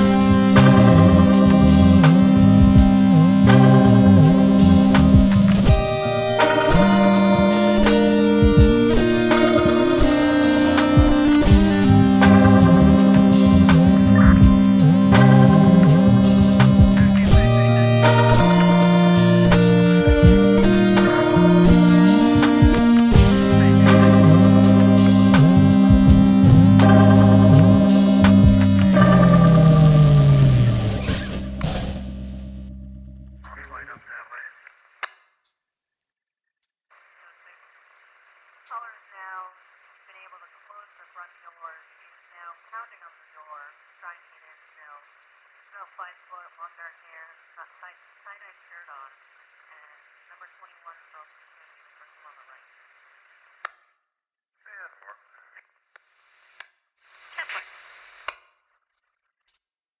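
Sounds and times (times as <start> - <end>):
electric guitar and bass chord: 0.0 - 33.6
thin radio-like voice: 8.2 - 25.9, 33.4 - 34.7, 38.7 - 45.1, 45.7 - 51.3, 52.0 - 52.7, 54.7 - 55.6
tinny radio hiss: 33.4 - 35.1, 36.9 - 53.7, 54.7 - 58.4.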